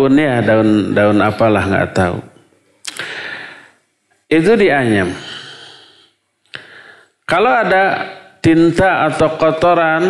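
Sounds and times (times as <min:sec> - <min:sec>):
mouth click: 0:02.8 - 0:03.1
man breathing into microphone: 0:02.9 - 0:03.8, 0:05.1 - 0:07.2.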